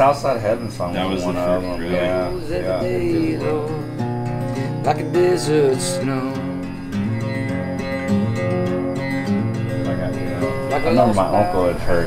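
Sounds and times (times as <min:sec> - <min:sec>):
man speaking: 0:00.0 - 0:02.9, 0:09.9 - 0:12.0
acoustic guitar strumming: 0:00.0 - 0:12.0.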